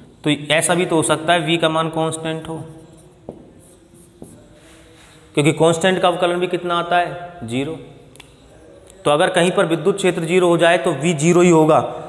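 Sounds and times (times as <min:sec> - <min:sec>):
marker pen on whiteboard: 0:02.2 - 0:05.4.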